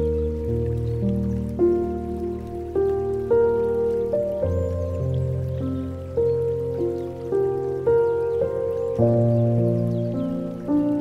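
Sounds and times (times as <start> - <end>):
gentle solo piano: 0.0 - 11.0
water flowing: 0.0 - 11.0.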